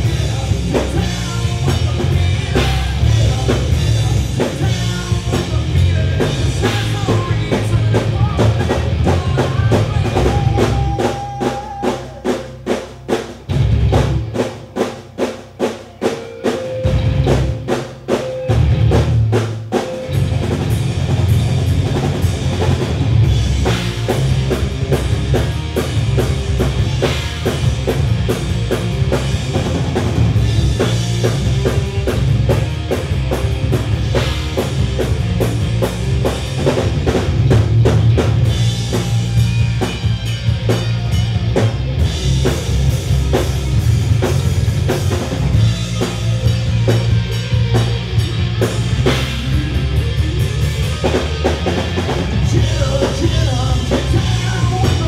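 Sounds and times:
bass guitar: 0.0 - 55.0
drum kit: 0.0 - 55.0
electric guitars: 0.0 - 55.0.

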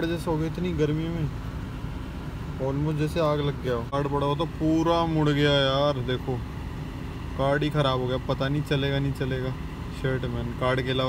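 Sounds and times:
man talking: 0.0 - 1.4, 2.6 - 6.5, 7.4 - 11.0
car air conditioning hum: 0.0 - 11.0.

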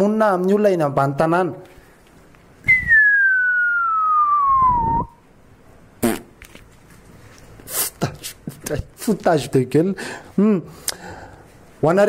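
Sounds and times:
person whistling descending note: 2.6 - 5.2.

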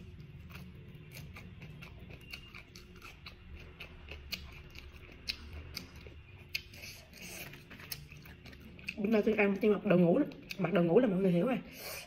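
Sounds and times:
chewing with crisp clicks: 0.0 - 10.8.

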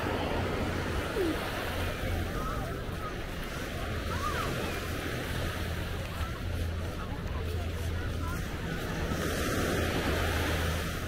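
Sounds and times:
waves washing onto sandy shore: 0.0 - 11.0.

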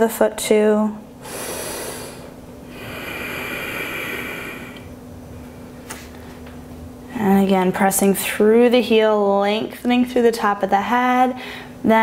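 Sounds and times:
woman breathing: 1.2 - 6.4, 11.4 - 11.8.

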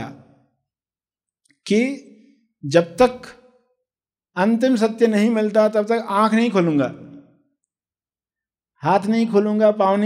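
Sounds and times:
man speaking: 1.6 - 3.4, 8.8 - 10.0.

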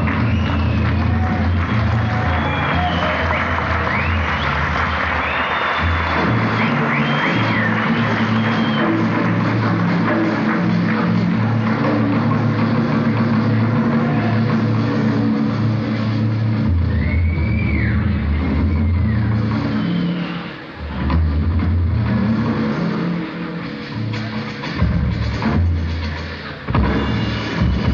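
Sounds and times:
bass line: 0.0 - 27.9
live rock band playing: 20.8 - 27.9.

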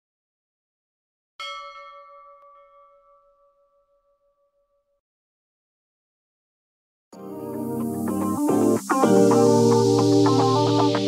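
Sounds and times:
bell chime ringing: 1.4 - 4.6.

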